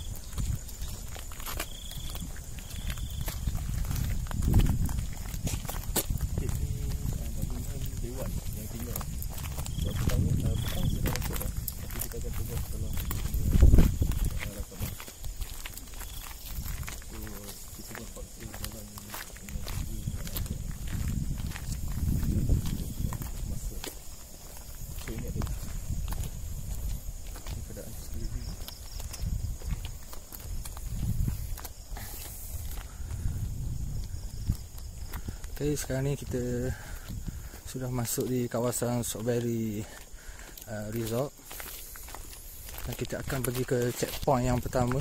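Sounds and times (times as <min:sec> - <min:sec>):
footsteps on paved road: 0:00.0 - 0:45.0.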